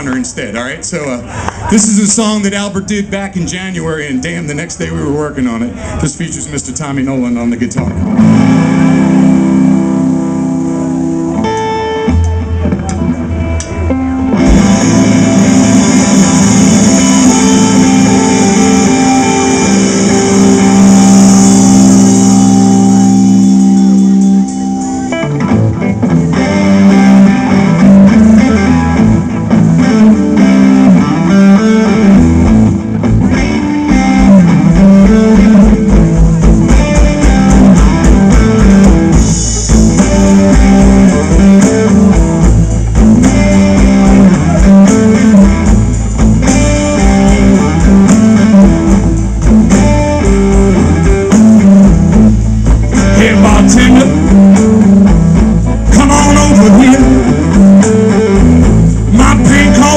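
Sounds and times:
electric guitar: 0:00.0 - 0:06.3, 0:07.0 - 0:59.9
blues band playing: 0:00.0 - 0:59.9
low bass line: 0:07.8 - 0:59.9.

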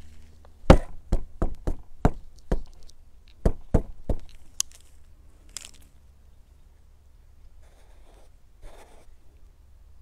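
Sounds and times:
sharp knocks: 0:00.7 - 0:02.7, 0:03.4 - 0:04.3.

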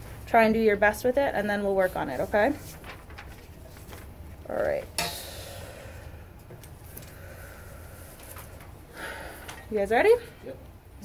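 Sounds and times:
low room hum: 0:00.0 - 0:11.0
paper sheets rustling: 0:01.4 - 0:05.0.

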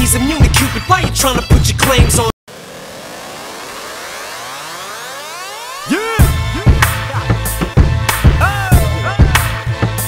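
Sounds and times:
rising synth riser: 0:02.5 - 0:07.7.

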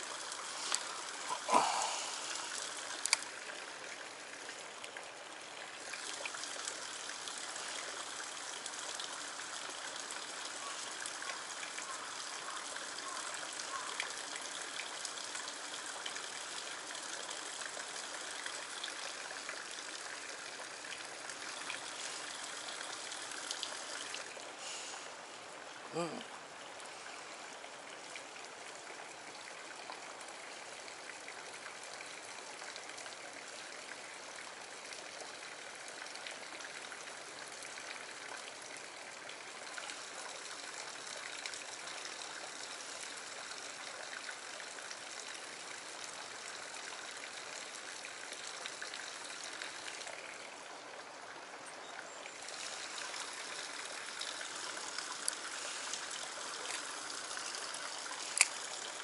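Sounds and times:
stream water running over rock: 0:00.0 - 0:59.0.

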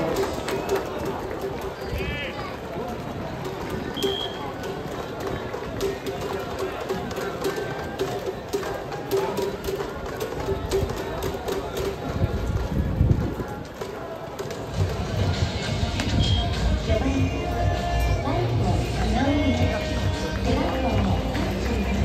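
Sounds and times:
crowd voices: 0:00.0 - 0:22.0
music playing: 0:14.7 - 0:22.0.

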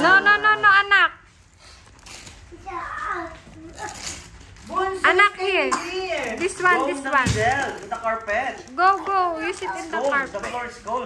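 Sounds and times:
young children talking: 0:02.6 - 0:04.3, 0:08.8 - 0:10.4.

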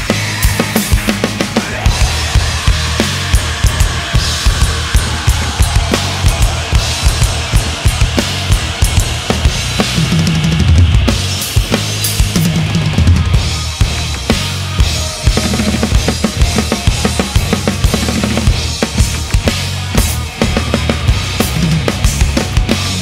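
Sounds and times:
rock drum kit groove: 0:00.0 - 0:23.0.

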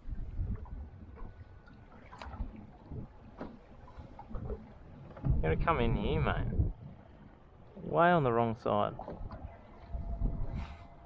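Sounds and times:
wind buffeting microphone: 0:00.0 - 0:07.2, 0:09.0 - 0:11.0
water lapping against boat hull: 0:00.0 - 0:11.0.

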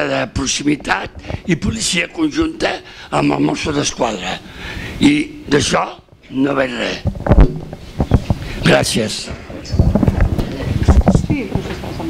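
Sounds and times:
microphone handling thumps: 0:00.2 - 0:02.9, 0:06.0 - 0:12.0.

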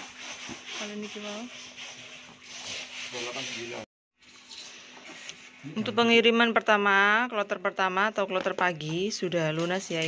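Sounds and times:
rough rubbing rustling noise: 0:00.0 - 0:05.6
woman's voice: 0:00.8 - 0:01.6, 0:05.7 - 0:10.0.

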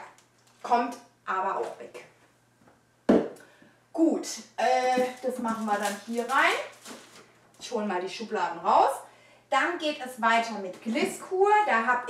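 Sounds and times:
bottle thumping: 0:03.1 - 0:03.4.

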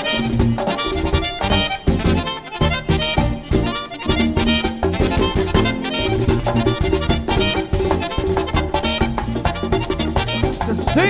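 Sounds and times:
button accordion: 0:00.0 - 0:11.0
steady driving beat: 0:00.0 - 0:11.0.

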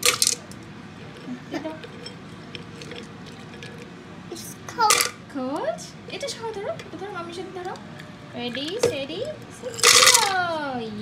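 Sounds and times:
ice cubes clinking in blender jar: 0:00.0 - 0:03.9, 0:09.6 - 0:10.4.

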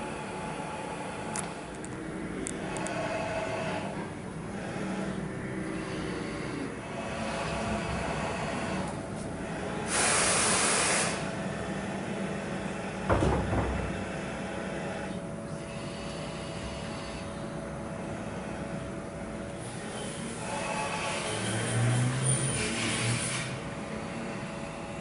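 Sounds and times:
machine axis drives whirring: 0:00.0 - 0:25.0
steady hiss of air: 0:09.1 - 0:11.3
loud air hiss: 0:09.9 - 0:11.3
short thump: 0:13.1 - 0:14.0.

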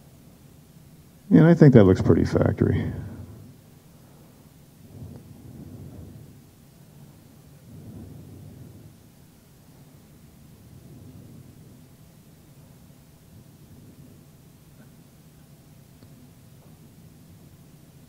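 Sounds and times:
low room rumble: 0:00.0 - 0:18.0.

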